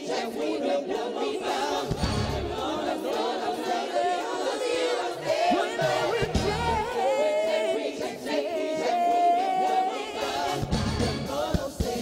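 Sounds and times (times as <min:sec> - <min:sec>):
gospel choir singing: 0:00.0 - 0:12.0
bass and drums: 0:05.9 - 0:06.9, 0:10.6 - 0:12.0.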